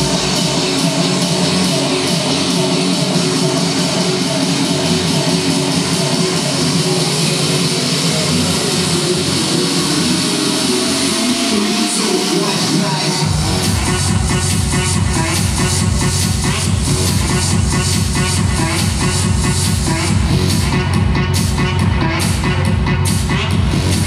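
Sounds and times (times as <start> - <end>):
loud cheerleading music: 0.0 - 24.0.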